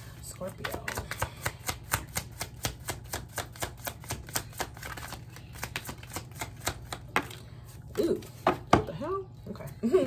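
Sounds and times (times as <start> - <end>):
cards being shuffled: 0.4 - 8.6.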